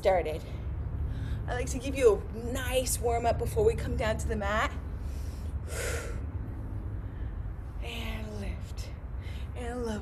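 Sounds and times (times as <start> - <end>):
low background rumble: 0.0 - 10.0
sharp exhale: 5.0 - 6.3.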